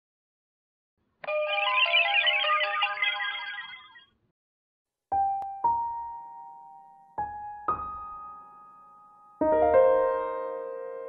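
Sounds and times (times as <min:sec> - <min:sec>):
sparkly chime jingle: 0:01.2 - 0:04.1.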